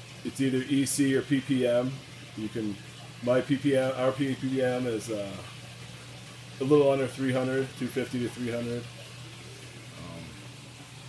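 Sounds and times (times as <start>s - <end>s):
pump humming: 0.0s - 11.0s
water trickling: 0.0s - 11.0s.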